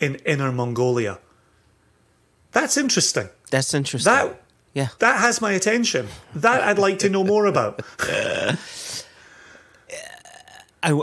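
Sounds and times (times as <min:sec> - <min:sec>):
person speaking: 0:02.6 - 0:09.1.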